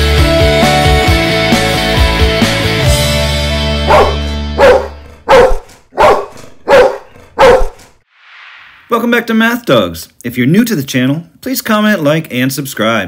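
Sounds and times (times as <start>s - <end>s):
dog barking: 3.9s - 7.8s
soft whoosh: 8.1s - 8.9s.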